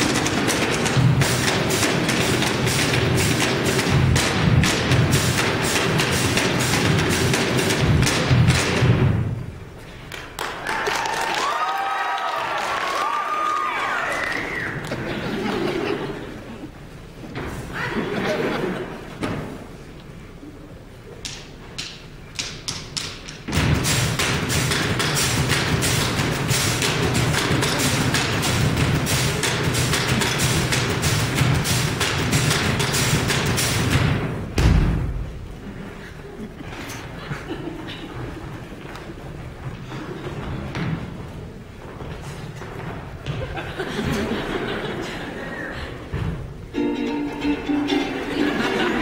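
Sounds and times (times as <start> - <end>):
percussion on a refrigerator: 0.0 - 9.3, 21.3 - 35.2.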